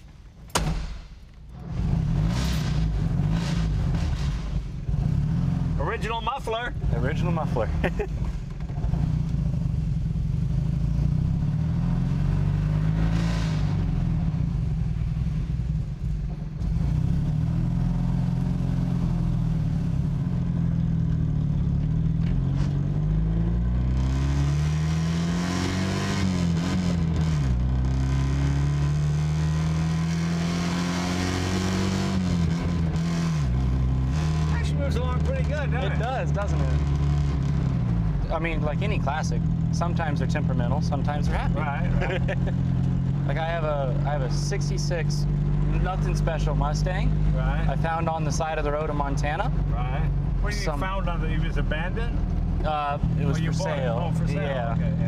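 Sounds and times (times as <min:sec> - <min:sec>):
car engine accelerating and shifting: 0:01.5 - 0:55.0.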